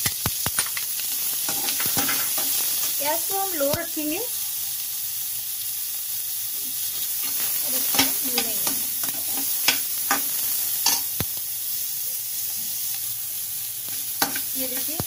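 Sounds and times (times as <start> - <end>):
onion sizzling in oil: 0.0 - 15.0.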